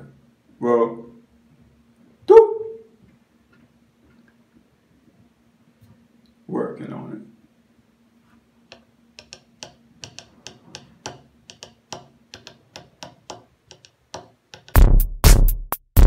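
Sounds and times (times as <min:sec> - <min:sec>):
light tapping clicks: 0:08.7 - 0:14.8
electronic music with drum-machine beat: 0:14.6 - 0:16.0.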